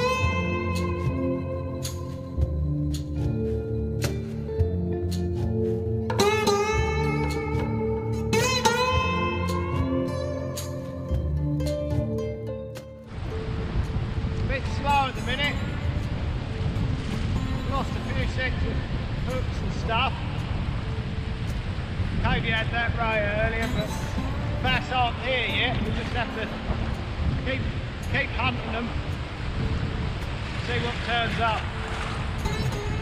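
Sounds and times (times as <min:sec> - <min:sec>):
breaking surf: 0:13.1 - 0:33.0
wind buffeting microphone: 0:13.1 - 0:33.0.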